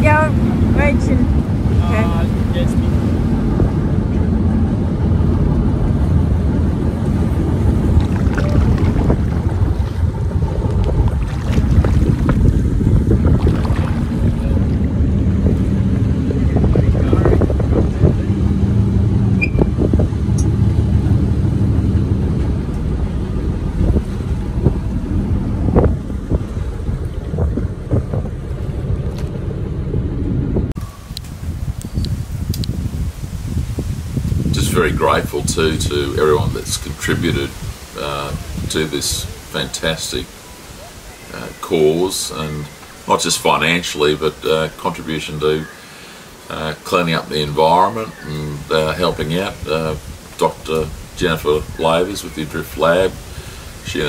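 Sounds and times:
wind noise on microphone: 0.0s - 39.6s, 47.8s - 54.0s
motorboat engine humming: 0.0s - 54.0s.

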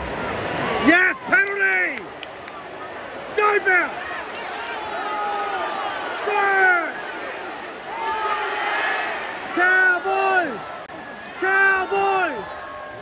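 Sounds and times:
spectators shouting: 0.0s - 13.0s
stadium crowd noise: 0.0s - 13.0s.

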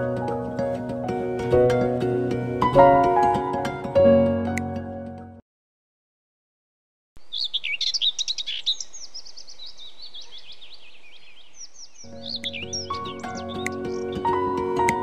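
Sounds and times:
music: 0.0s - 5.4s, 12.1s - 15.0s
birds chirping and trilling: 7.2s - 15.0s.

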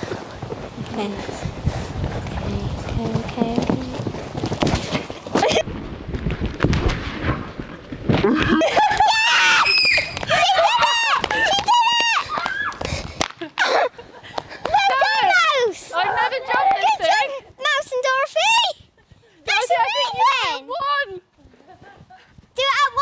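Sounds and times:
wind buffeting microphone: 0.0s - 23.0s
girls shrieking and cheering: 8.4s - 12.9s, 14.6s - 17.4s.

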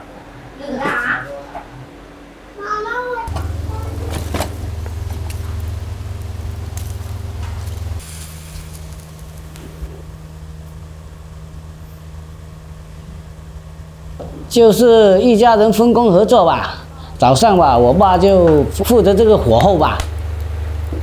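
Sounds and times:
stove fire rumbling: 2.6s - 21.0s
low hum: 3.3s - 21.0s.

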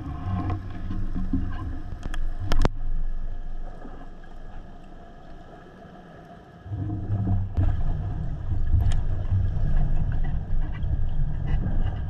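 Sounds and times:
muffled underwater rumble: 0.0s - 12.0s.

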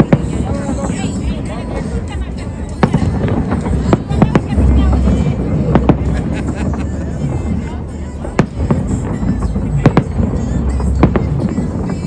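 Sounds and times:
firework shells bursting: 8.2s - 12.0s.

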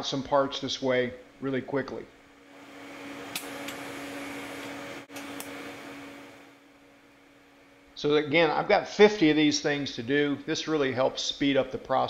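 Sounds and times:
shop machinery humming: 2.4s - 11.0s.

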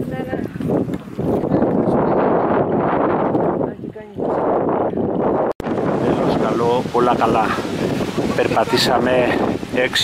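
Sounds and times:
strong wind buffeting microphone: 0.0s - 10.0s.

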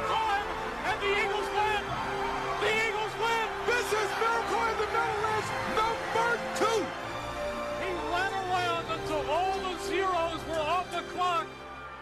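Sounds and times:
man shouting excited commentary: 2.6s - 7.0s.

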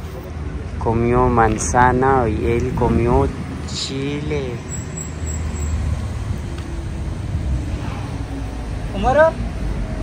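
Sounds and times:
deep background rumble: 5.4s - 10.0s.

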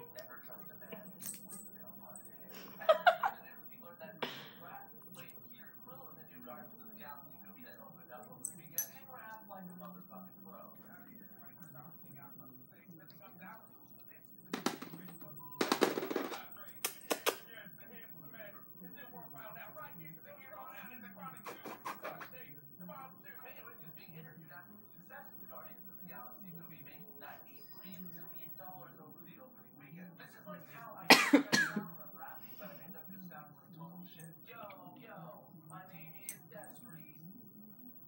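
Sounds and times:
person coughing: 31.1s - 31.8s.

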